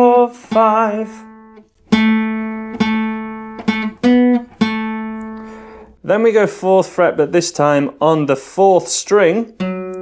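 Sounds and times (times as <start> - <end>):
acoustic guitar picked notes: 0.0 - 6.0, 8.5 - 10.0.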